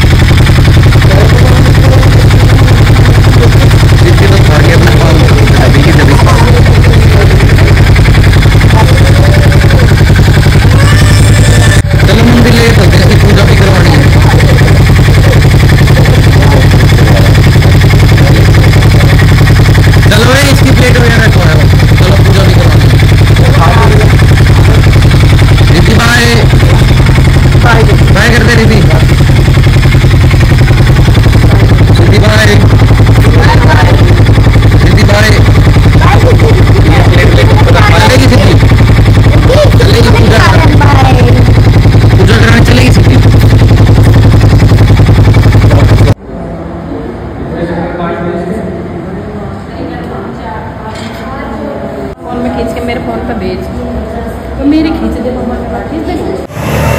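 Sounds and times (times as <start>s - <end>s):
motorcycle engine idling: 0.0s - 46.2s
people's voices: 0.9s - 43.6s.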